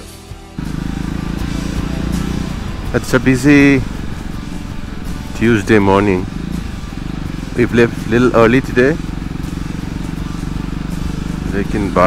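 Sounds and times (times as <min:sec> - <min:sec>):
motorcycle engine running steadily: 0:00.0 - 0:12.0.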